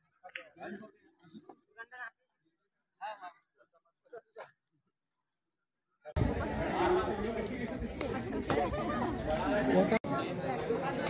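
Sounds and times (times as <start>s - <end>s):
people chattering: 0.0s - 11.0s.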